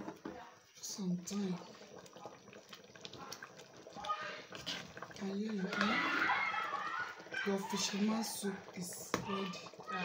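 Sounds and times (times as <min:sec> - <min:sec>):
metal spoon stirring in a pot: 0:02.7 - 0:06.4.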